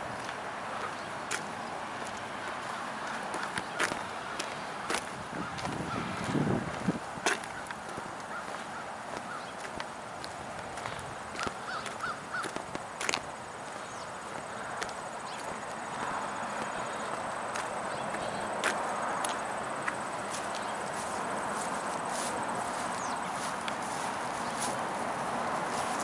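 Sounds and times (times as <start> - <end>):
footsteps on grass: 0.0 - 26.0
steady outdoor rushing noise: 0.0 - 26.0.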